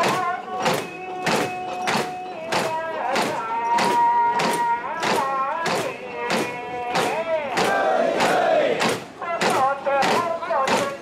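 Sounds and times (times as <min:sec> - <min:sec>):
people shouting a chant in unison: 0:06.4 - 0:10.2.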